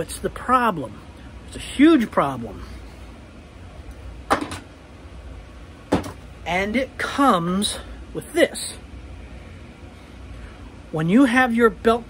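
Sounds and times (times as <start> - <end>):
steady low hum: 0.0 - 12.0
objects clacking on workbench: 4.3 - 4.7, 5.9 - 6.2.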